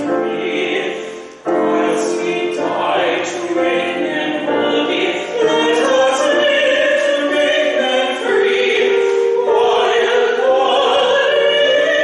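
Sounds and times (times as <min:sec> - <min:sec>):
piano accompaniment: 0:00.0 - 0:12.0
woman and man singing duet: 0:00.0 - 0:12.0.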